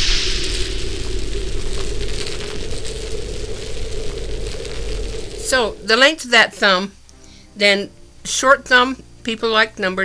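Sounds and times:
deep rumble: 0:00.0 - 0:07.1
crackling hiss: 0:00.0 - 0:08.4
low steady hum: 0:00.0 - 0:10.0.

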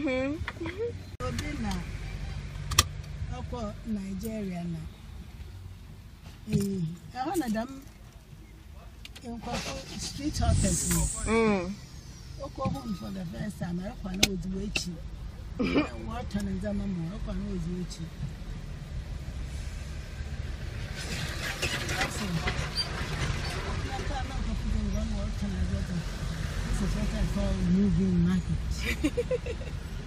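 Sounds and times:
car idling: 0:00.7 - 0:19.4.

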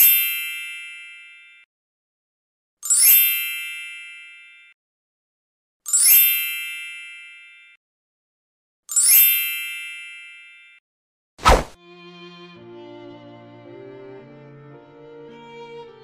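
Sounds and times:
bright chime: 0:00.0 - 0:01.6, 0:02.8 - 0:04.8, 0:05.9 - 0:07.8, 0:08.9 - 0:10.8.

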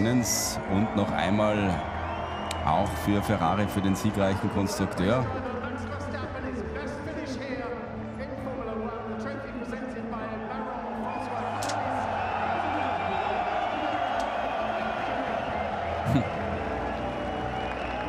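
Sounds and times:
crowd cheering and clapping: 0:00.0 - 0:06.3, 0:10.9 - 0:18.0.

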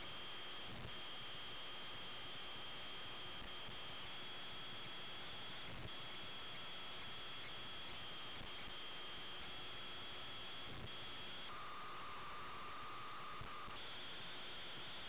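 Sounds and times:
radio static hiss: 0:04.4 - 0:15.0.

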